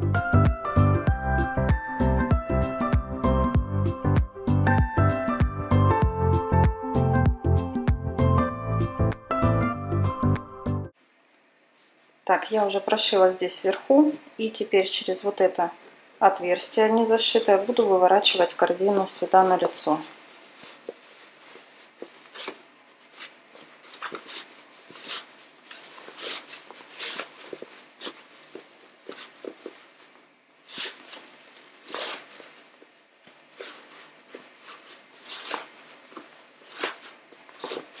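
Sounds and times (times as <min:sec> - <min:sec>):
fabric rustling and crumpling: 0:17.0 - 0:38.0.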